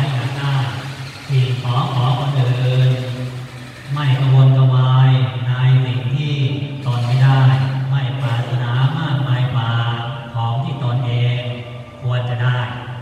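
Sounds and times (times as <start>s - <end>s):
man chanting in low voice: 0.0s - 13.0s.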